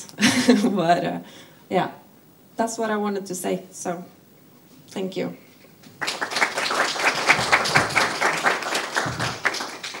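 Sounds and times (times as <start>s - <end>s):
audience applauding: 6.0s - 10.0s.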